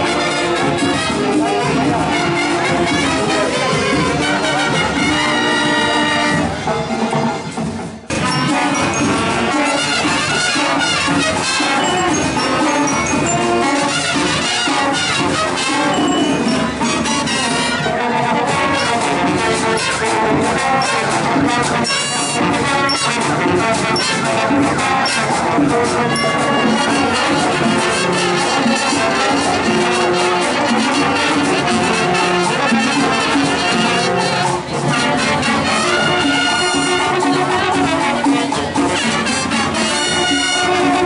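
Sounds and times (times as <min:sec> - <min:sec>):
marching band brass playing: 0:00.0 - 0:41.0.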